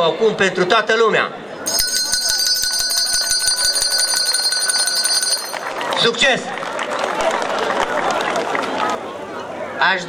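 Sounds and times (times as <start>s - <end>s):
handbell ringing rapidly: 1.7s - 5.9s.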